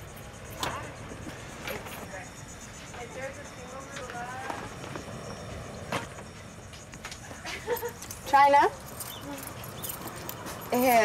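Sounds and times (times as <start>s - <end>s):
people talking: 0.5s - 4.7s, 8.2s - 9.6s, 10.7s - 11.0s.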